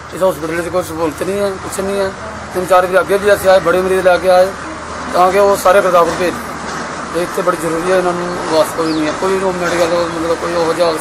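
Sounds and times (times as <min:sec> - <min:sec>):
man speaking: 0:00.0 - 0:06.5, 0:07.1 - 0:11.0.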